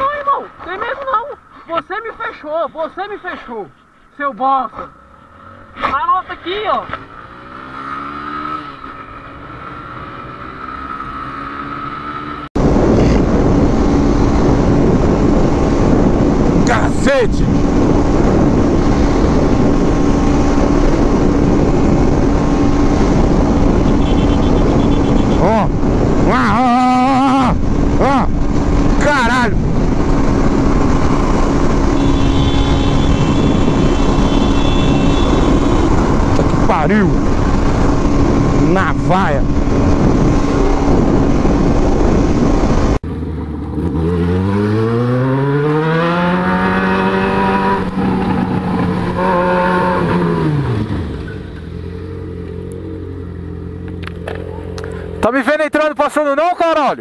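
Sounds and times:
motorcycle engine at speed: 0:04.7 - 0:55.3
motorcycle engine revving: 0:04.8 - 0:16.8, 0:17.4 - 0:55.2
wind rush over microphone: 0:12.6 - 0:43.0.

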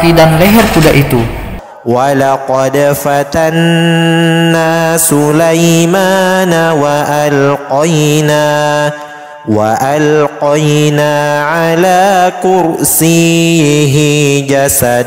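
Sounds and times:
man chanting melodically: 0:00.0 - 0:15.0.

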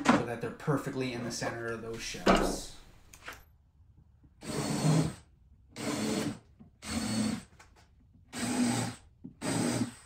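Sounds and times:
cordless drill boring wood: 0:04.4 - 0:07.6, 0:08.3 - 0:10.0.

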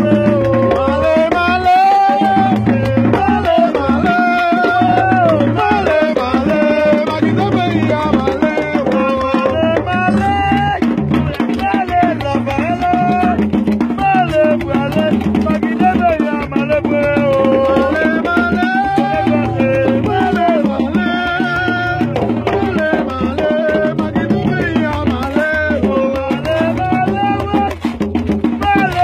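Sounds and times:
group singing: 0:00.0 - 0:29.0
hand drums beating: 0:00.0 - 0:29.0.

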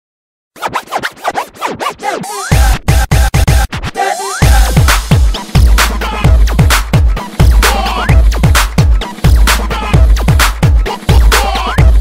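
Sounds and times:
dj scratches: 0:00.6 - 0:12.0
heavy bass-driven beats: 0:02.1 - 0:12.0.

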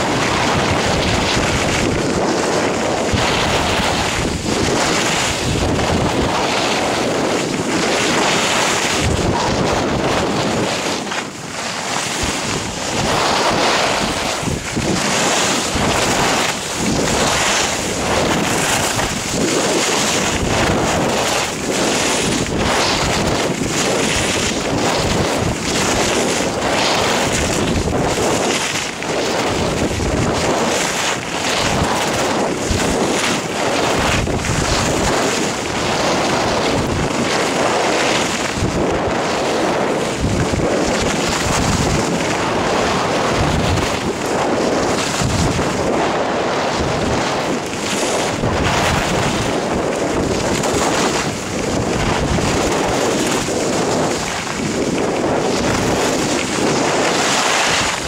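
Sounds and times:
skis scraping on snow: 0:00.0 - 0:58.0
wind rushing over microphone: 0:00.0 - 0:58.0.

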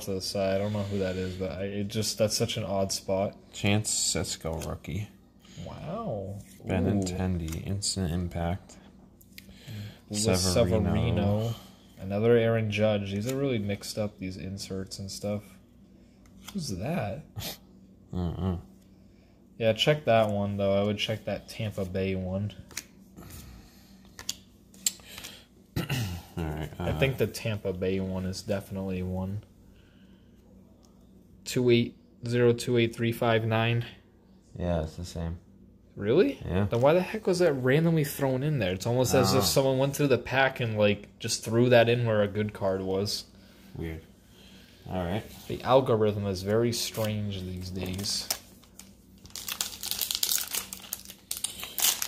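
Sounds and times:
plastic wrapper crinkling: 0:46.8 - 0:52.0
wrapper tearing open: 0:47.6 - 0:52.0.

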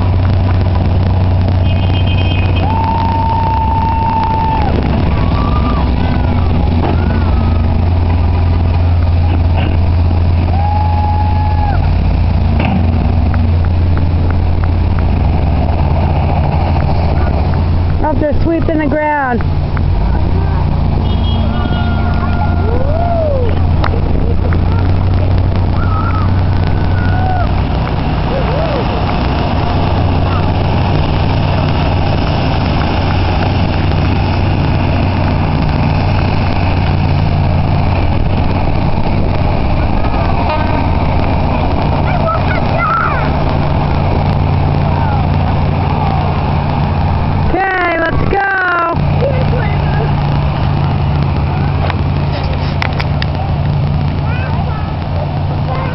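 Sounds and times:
heavy vehicle engines droning: 0:00.0 - 0:55.9.

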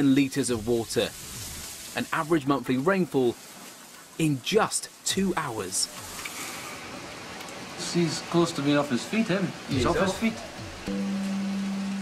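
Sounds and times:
floodwater running down street: 0:00.0 - 0:12.0
torrential rain: 0:00.0 - 0:12.0.

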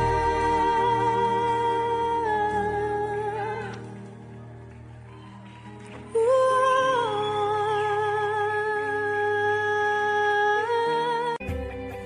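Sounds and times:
soft musical accompaniment: 0:00.0 - 0:12.0.

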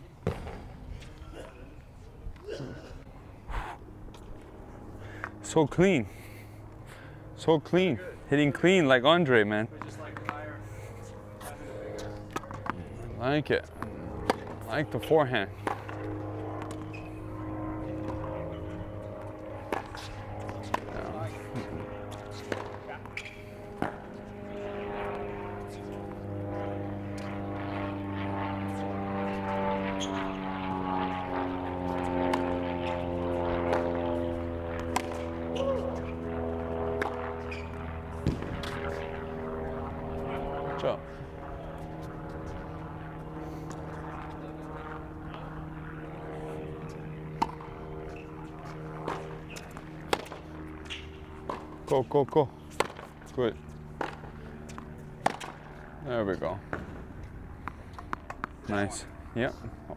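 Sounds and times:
propeller aircraft droning overhead: 0:00.0 - 0:59.9
tennis balls hit by racquets: 0:00.2 - 0:01.1, 0:09.7 - 0:24.3, 0:31.9 - 0:36.3, 0:36.9 - 0:39.0, 0:46.8 - 0:58.8.

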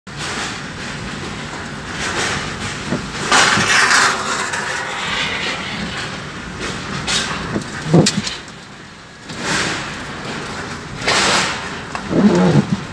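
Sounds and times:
wind gusting around a car: 0:05.5 - 0:12.9.

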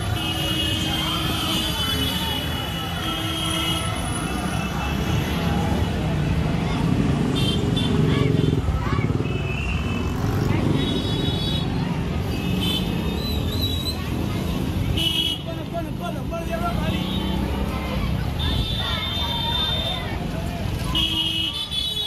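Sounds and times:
crowd voices: 0:00.0 - 0:22.0
motorcycle engines passing: 0:00.0 - 0:22.0.

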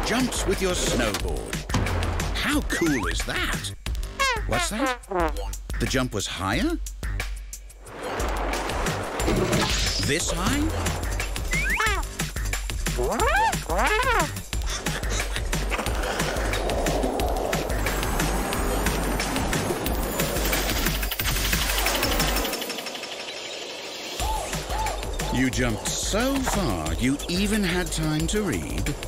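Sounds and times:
cartoon background music: 0:00.0 - 0:22.7, 0:24.2 - 0:29.0
whistle-like glides: 0:11.5 - 0:11.8.

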